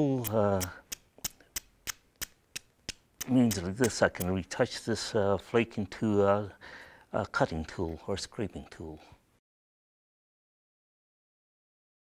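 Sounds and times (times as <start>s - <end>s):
stone tapping stone flake: 0.2s - 4.4s.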